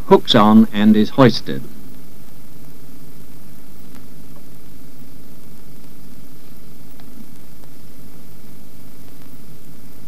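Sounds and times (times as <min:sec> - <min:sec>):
film soundtrack hiss: 0:00.0 - 0:10.0
low hum: 0:00.0 - 0:10.0.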